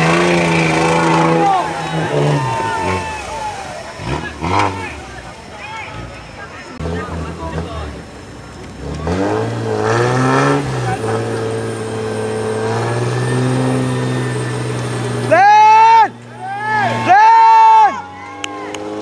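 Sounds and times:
engine revving in mud: 0.0s - 19.0s.

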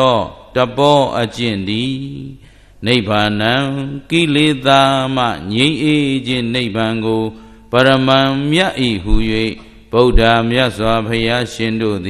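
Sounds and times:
man chanting into microphone: 0.0s - 12.0s
breath: 2.4s - 2.8s, 7.3s - 7.7s, 9.6s - 9.9s.

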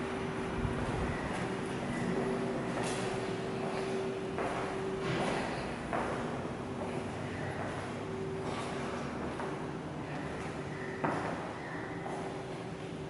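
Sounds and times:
steady mechanical hum: 0.0s - 13.0s.

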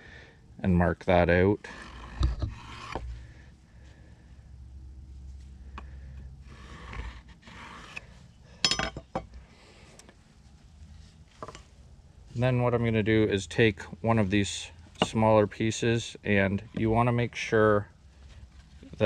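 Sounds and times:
pencil scratching along metal square: 1.7s - 3.0s, 6.4s - 8.1s
metal square clinking and knocking: 8.6s - 9.3s.

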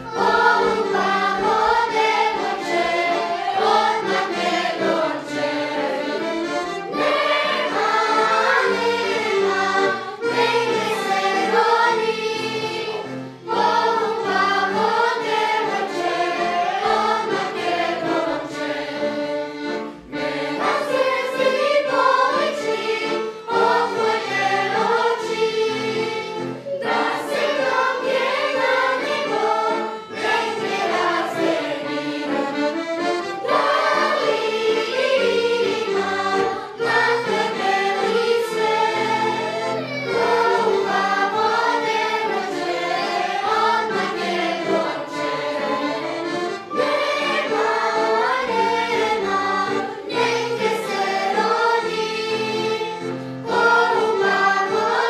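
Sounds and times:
children's choir singing: 0.0s - 55.0s.

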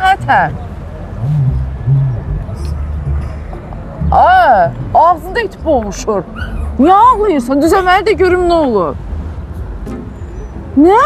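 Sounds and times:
low steady rumble: 0.0s - 9.4s.

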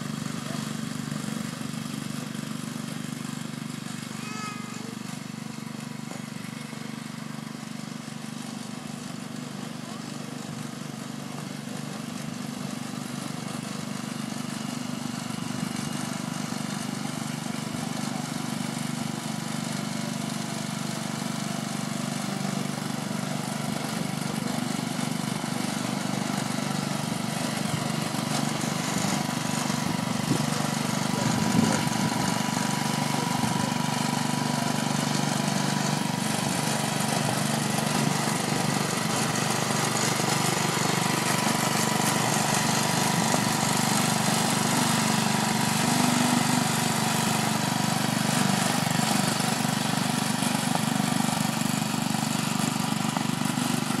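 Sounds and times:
go-kart engine droning: 22.6s - 53.8s.

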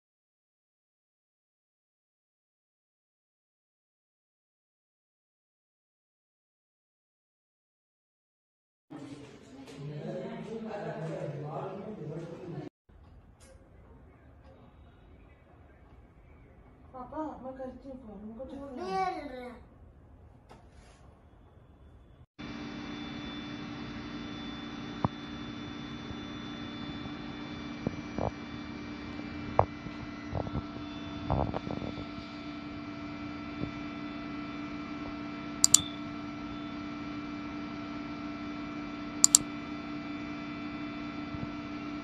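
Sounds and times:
sharp clicks and knocks: 35.6s - 35.9s, 39.2s - 39.4s.

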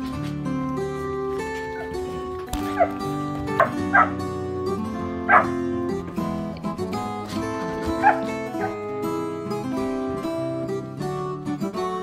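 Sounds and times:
acoustic guitar music: 0.0s - 12.0s
puppies yipping: 1.6s - 4.3s, 5.2s - 5.6s, 7.6s - 8.9s.

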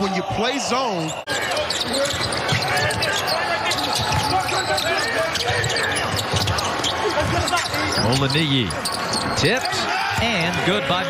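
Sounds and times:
players calling out: 0.0s - 11.0s
shoes on court floor: 1.3s - 11.0s.

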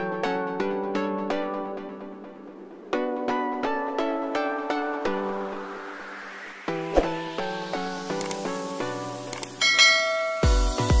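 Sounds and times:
bright bell ding: 9.6s - 10.6s.

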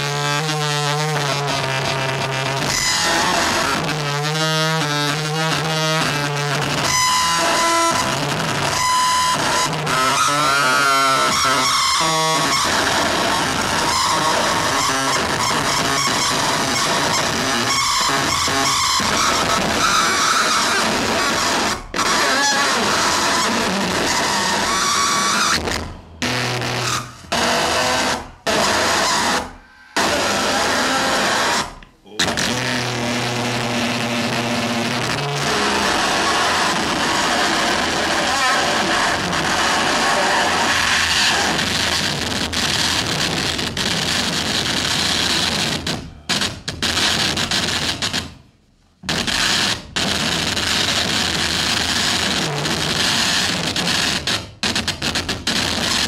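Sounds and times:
loud electronic noise music: 0.0s - 48.4s, 49.1s - 56.0s.

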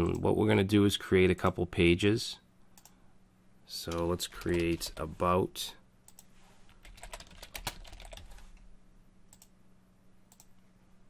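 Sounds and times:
typing on computer keyboard: 6.1s - 8.4s.

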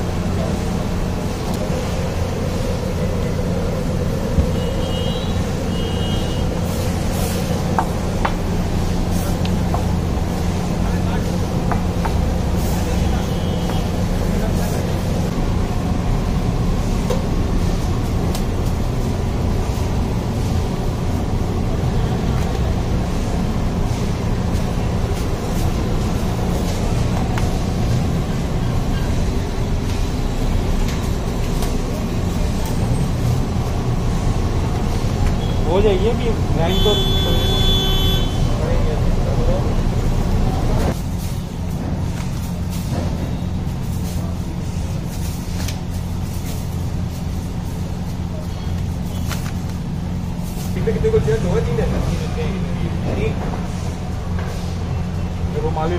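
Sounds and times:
loud steady low rumble: 0.0s - 55.9s.

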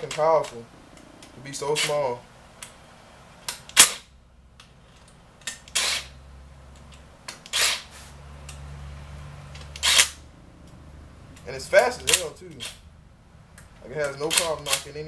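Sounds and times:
cordless drill spinning bolts: 9.6s - 10.1s.

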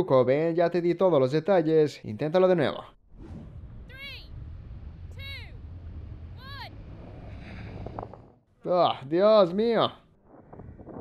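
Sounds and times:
low steady rumble: 3.1s - 8.4s.

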